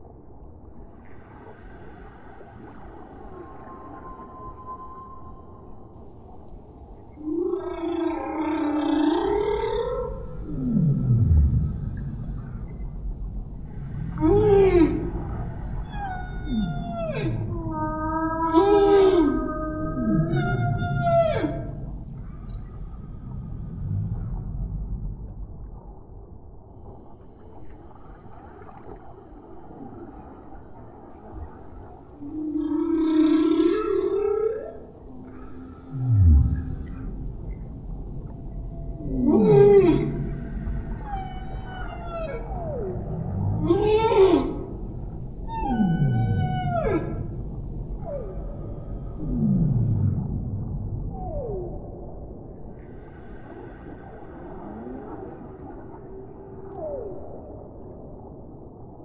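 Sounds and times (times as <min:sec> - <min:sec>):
low underwater rumble: 0:00.0 - 0:59.0
humpback whale song: 0:00.7 - 0:26.0, 0:26.8 - 0:59.0.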